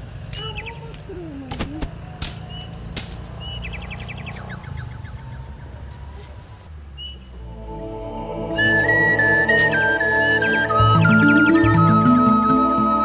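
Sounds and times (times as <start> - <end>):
sharp snaps: 0.3 - 4.7
bird chirping and trilling: 0.4 - 0.9, 3.4 - 5.8, 7.0 - 7.4, 8.6 - 12.0
steady low rumble: 3.0 - 11.3.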